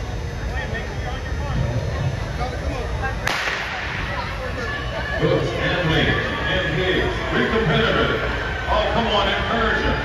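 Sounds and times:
crowd chatter murmur: 0:00.0 - 0:10.0
starting gun crack: 0:03.3 - 0:03.9.

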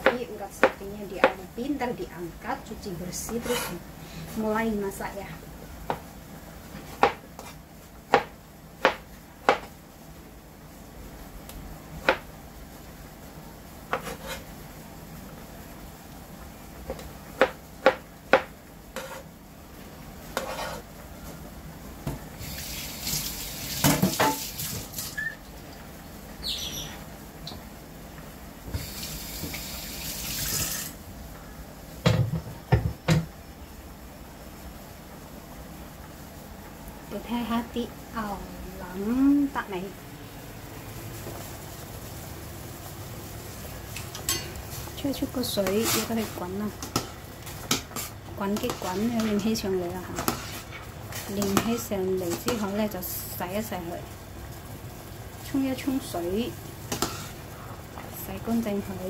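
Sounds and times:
knife cutting on a cutting board: 0:03.3 - 0:03.8, 0:13.9 - 0:14.4, 0:19.0 - 0:19.2, 0:20.4 - 0:20.8.

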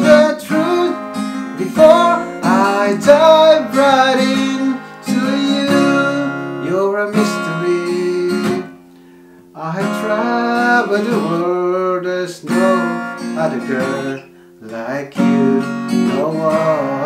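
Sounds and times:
acoustic guitar strumming chords: 0:00.0 - 0:17.0.

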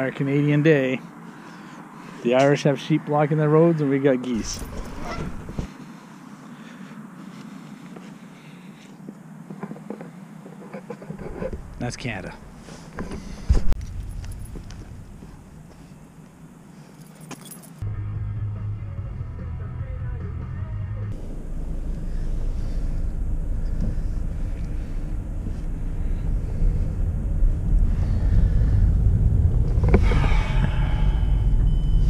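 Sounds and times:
car engine and road rumble: 0:00.0 - 0:32.0.

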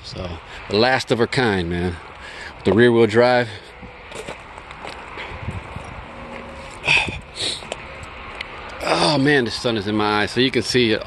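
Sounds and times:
footsteps on gravel: 0:03.7 - 0:09.0.

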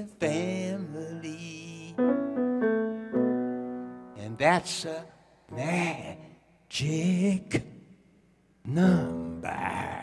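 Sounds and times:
person singing: 0:00.0 - 0:02.4, 0:04.2 - 0:07.6, 0:08.7 - 0:10.0
piano chords: 0:01.3 - 0:04.8.

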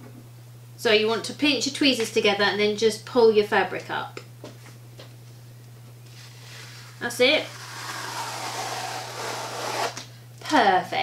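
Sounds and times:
fabric peeling off sticky mat: 0:06.1 - 0:10.0.

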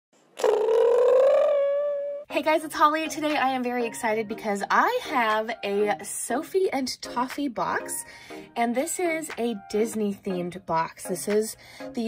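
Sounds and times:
synthetic cartoon-like tone: 0:00.4 - 0:02.3.

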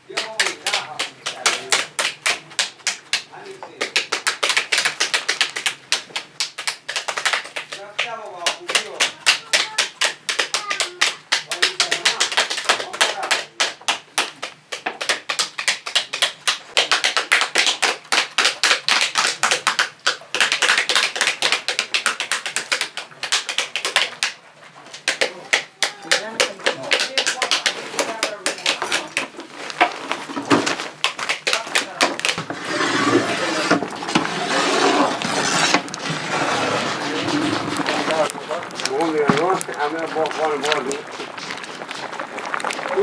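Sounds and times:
pomegranate seeds clicking into bowls: 0:00.1 - 0:32.5, 0:37.0 - 0:43.0.

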